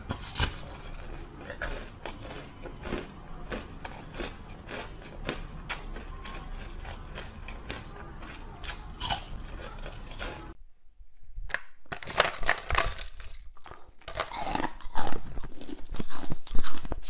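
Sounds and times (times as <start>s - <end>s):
ice crunching in mouth: 0.0s - 10.6s, 11.8s - 17.0s.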